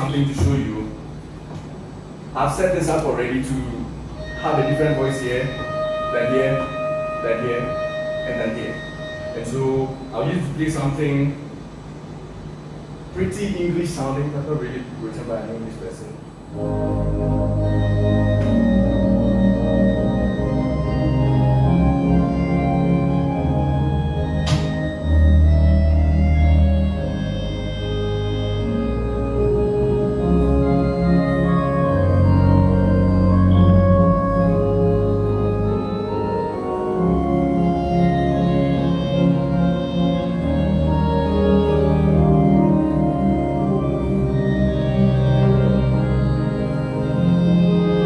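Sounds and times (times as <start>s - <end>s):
deep organ pedal bass notes: 0.0s - 48.0s
organ playing sustained chords: 0.0s - 48.0s
sharp click: 24.4s - 24.9s.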